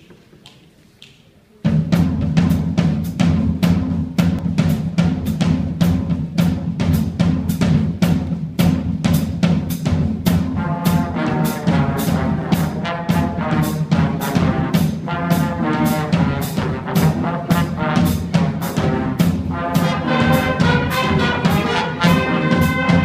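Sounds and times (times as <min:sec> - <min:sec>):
drum kit rapid beat: 0:01.6 - 0:23.0
horns playing: 0:10.5 - 0:23.0.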